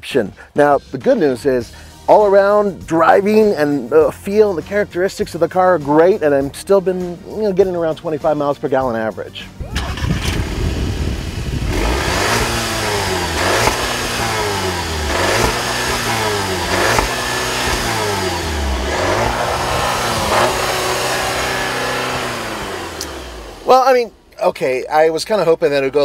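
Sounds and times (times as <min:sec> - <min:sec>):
car engine revving: 0:09.8 - 0:24.2.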